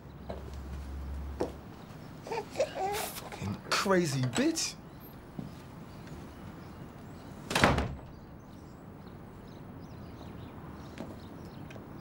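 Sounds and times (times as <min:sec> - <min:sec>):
wooden door slamming: 0:07.5 - 0:08.2.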